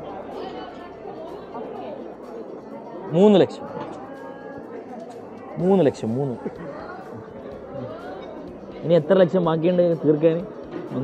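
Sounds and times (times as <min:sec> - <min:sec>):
faint background chatter: 0:00.0 - 0:11.0.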